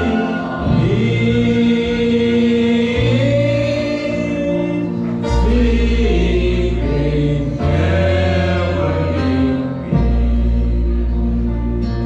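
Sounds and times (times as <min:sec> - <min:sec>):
group singing in harmony: 0:00.0 - 0:12.0
live band playing: 0:00.0 - 0:12.0.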